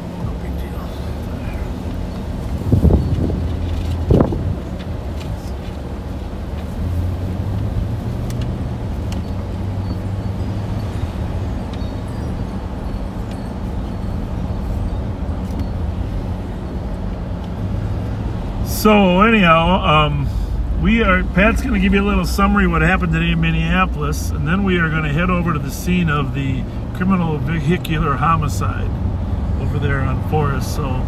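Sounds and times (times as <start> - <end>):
car engine and tyres rumbling: 0.0 - 31.0.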